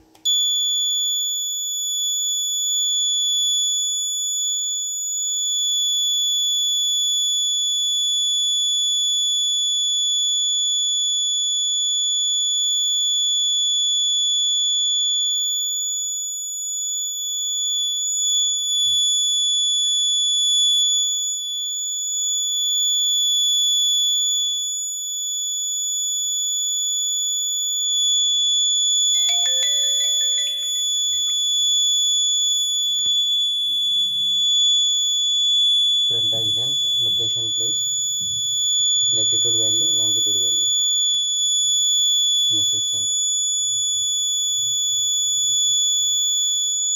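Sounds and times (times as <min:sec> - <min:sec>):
high-pitched buzzer tone: 0:29.1 - 0:32.0, 0:36.1 - 0:41.7, 0:42.4 - 0:44.0.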